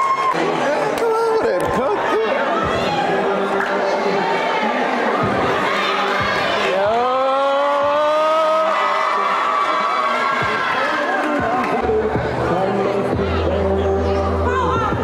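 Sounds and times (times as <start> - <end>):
background music: 0.0 - 15.0
crowd cheering: 0.0 - 15.0.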